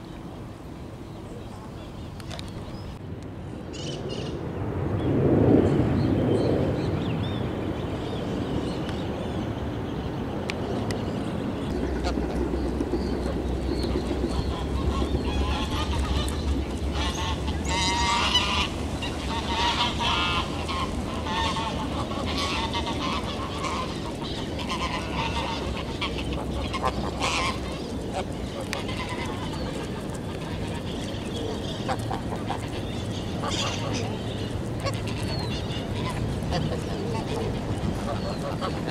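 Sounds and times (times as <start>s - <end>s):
geese honking: 11.7s - 38.9s.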